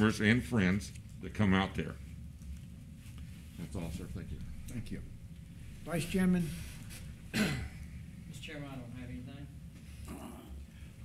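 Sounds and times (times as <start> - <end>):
man clearing throat: 7.3 - 7.9.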